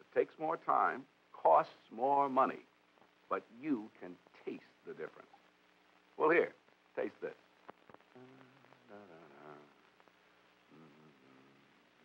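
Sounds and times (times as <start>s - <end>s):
faint voice: 8.1s - 9.9s, 10.7s - 12.0s.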